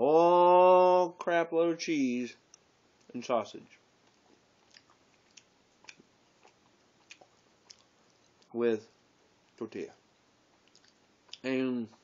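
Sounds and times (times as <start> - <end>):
person chewing food: 3.9 - 8.5, 9.3 - 12.0.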